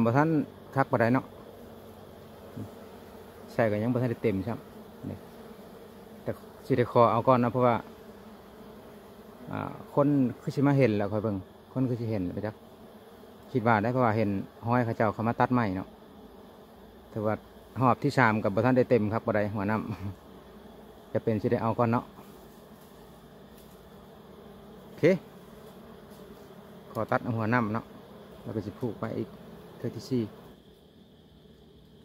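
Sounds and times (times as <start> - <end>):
bees humming: 0.0 - 32.0
honeybees buzzing: 0.0 - 32.0.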